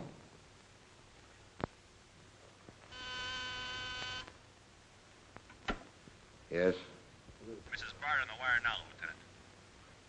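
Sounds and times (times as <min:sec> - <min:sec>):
desk buzzer buzzing: 0:02.9 - 0:04.3.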